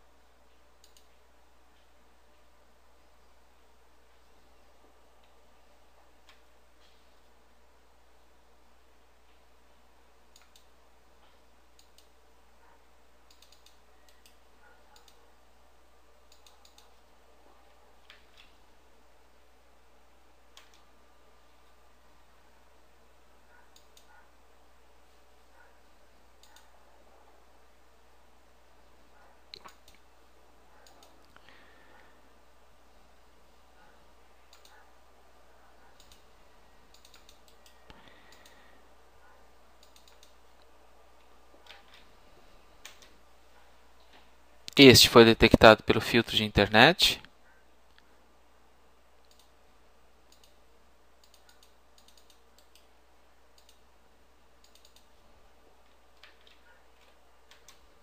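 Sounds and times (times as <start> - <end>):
low electrical hum: 0.0 - 58.0
mouse and keyboard clicks: 16.3 - 17.0, 34.5 - 34.8, 36.9 - 38.6, 39.8 - 40.4, 51.2 - 52.9, 54.6 - 55.1.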